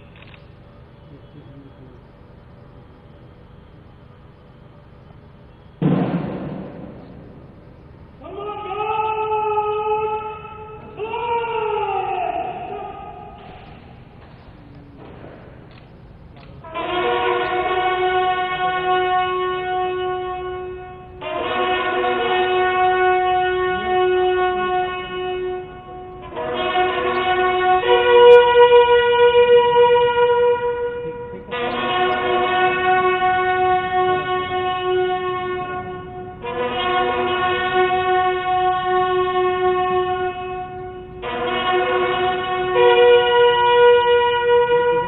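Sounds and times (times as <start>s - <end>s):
bugles playing long notes: 0.9s - 45.0s.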